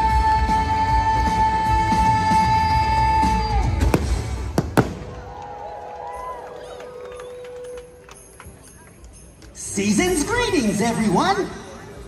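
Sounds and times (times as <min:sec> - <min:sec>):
fireworks shells bursting: 0:03.8 - 0:05.3.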